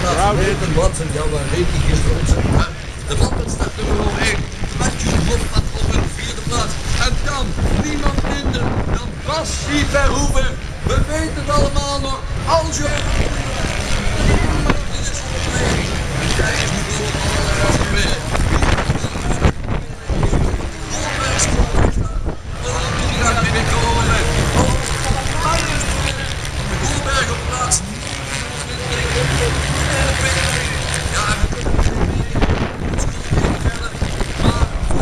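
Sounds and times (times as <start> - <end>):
wind buffeting microphone: 0.0 - 28.0, 29.4 - 35.0
crowd voices: 0.0 - 35.0
distant motorcycle engines: 0.0 - 35.0
public address commentator: 0.0 - 35.0.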